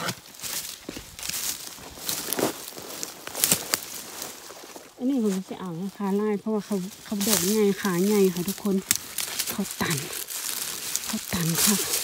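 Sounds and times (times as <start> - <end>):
leaves and twigs rustling: 0.0 - 12.0.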